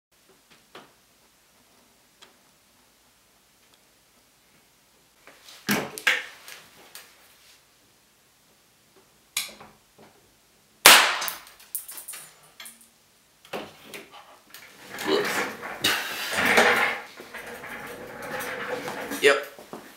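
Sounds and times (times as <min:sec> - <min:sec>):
capacitor bursting bang: 0:10.9 - 0:11.4
small crack: 0:10.9 - 0:12.8.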